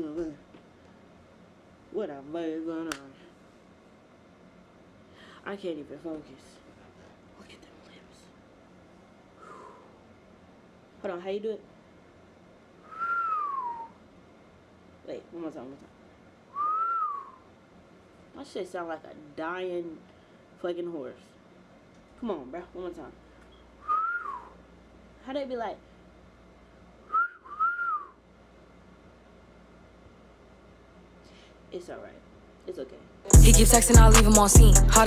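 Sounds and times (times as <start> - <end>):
person whistling a downward swooping note: 12.9 - 14.0, 16.6 - 17.4, 23.8 - 24.5, 27.1 - 28.1.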